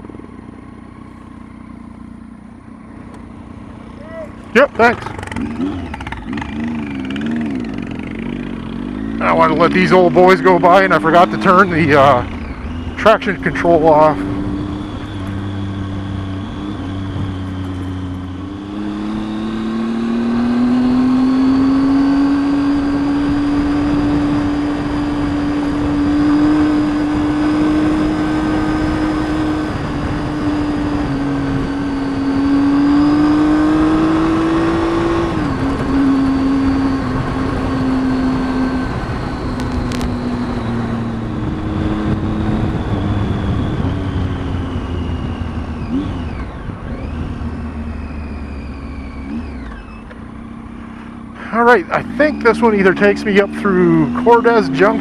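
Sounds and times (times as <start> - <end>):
motorcycle engine pulling: 4.3 - 55.0.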